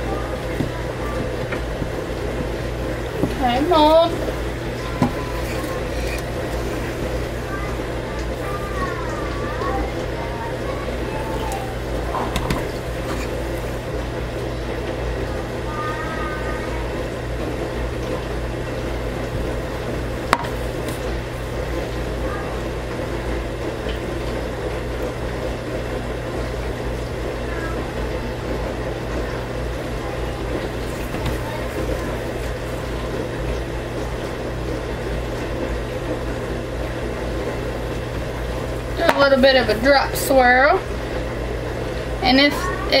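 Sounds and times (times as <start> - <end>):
faint voices: 0.0 - 17.4, 27.3 - 33.6
steady background hum: 0.0 - 43.0.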